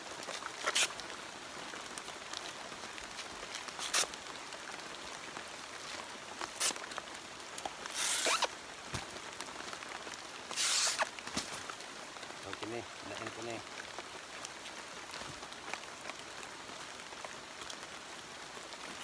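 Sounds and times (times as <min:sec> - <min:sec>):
fibre strips ripping by hand: 0:00.6 - 0:00.9, 0:03.8 - 0:04.1, 0:07.9 - 0:08.5, 0:10.6 - 0:11.1.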